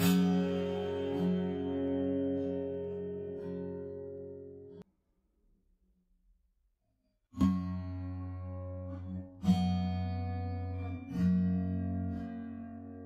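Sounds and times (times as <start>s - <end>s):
acoustic guitar chords strummed: 0.0s - 4.8s.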